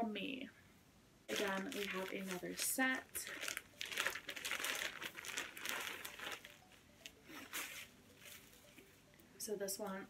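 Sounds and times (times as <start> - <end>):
plastic bag crinkling: 1.3 - 8.9.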